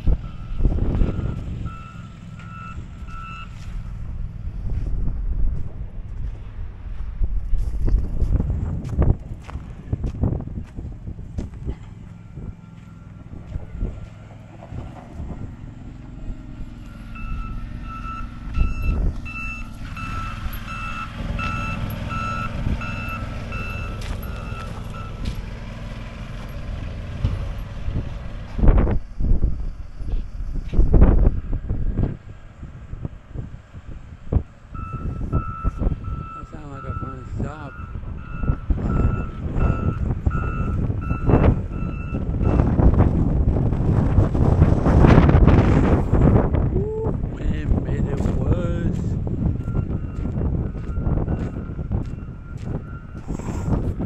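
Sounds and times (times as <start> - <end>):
tractor engine running: 0.0 - 54.0
reversing alarm beeping: 0.1 - 4.0, 11.7 - 14.2, 16.2 - 25.4, 34.7 - 42.8, 48.9 - 54.0.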